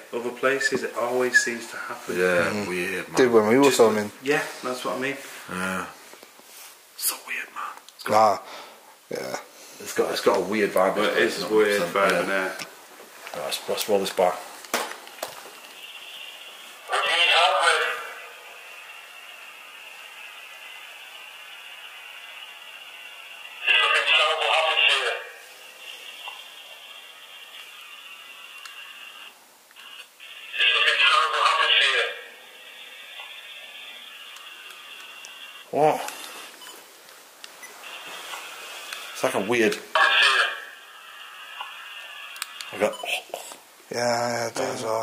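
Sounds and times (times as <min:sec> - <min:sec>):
faint high whine: 0:00.0 - 0:05.9, 0:15.1 - 0:45.0
steady hiss: 0:00.0 - 0:45.0.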